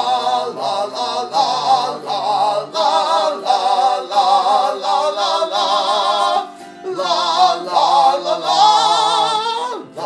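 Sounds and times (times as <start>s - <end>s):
man singing la la la: 0.0s - 10.0s
strummed autoharp chords: 0.0s - 10.0s.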